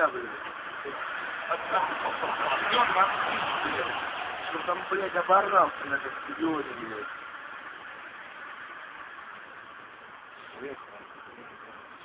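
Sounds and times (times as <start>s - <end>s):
city street traffic hiss: 0.0s - 12.0s.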